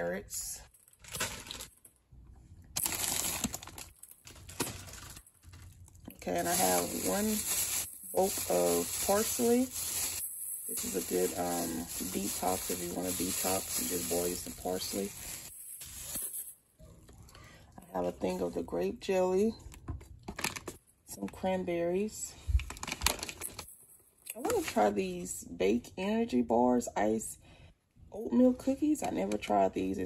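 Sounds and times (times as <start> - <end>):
plastic bag crinkling: 0.6 - 2.0, 2.8 - 16.6, 20.3 - 20.8, 22.6 - 23.8.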